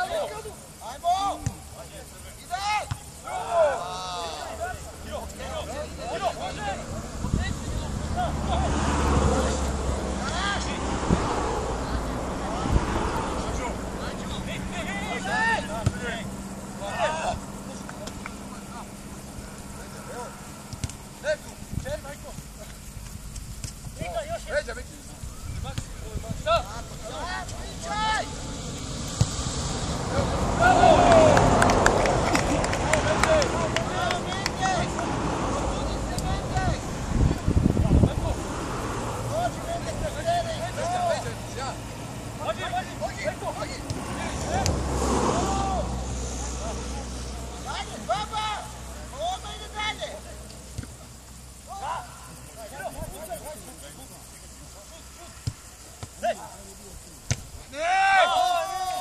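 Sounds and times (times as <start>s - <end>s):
footballers shouting calls: 0.0s - 29.2s, 29.9s - 59.0s.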